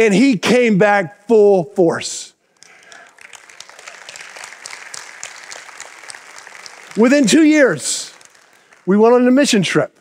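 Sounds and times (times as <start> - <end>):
preacher speaking: 0.0 - 2.4, 6.9 - 10.0
congregation applauding: 2.6 - 9.8.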